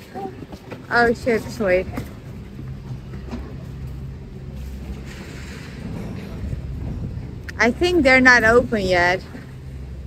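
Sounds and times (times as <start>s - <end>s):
low steady street rumble: 0.0s - 10.0s.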